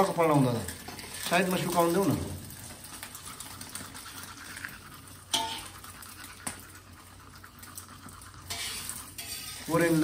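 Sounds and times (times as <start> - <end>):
eggs frying in a pan: 0.0 - 10.0
metal utensil scraping pan: 0.0 - 10.0
utensil tapping pan: 5.3 - 6.7, 8.4 - 10.0.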